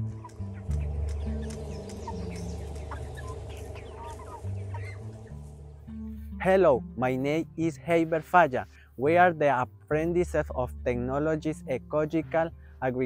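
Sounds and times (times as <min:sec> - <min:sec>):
chickens calling: 0:00.0 - 0:06.4
music with stepping bass line: 0:00.0 - 0:06.5.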